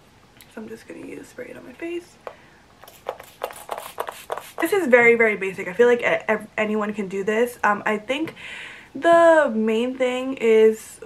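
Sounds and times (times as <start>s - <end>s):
spray bottle misting: 2.8s - 4.8s.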